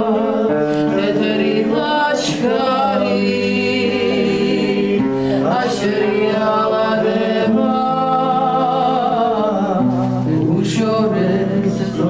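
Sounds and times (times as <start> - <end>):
choir singing: 0.0 - 9.9, 10.5 - 12.0.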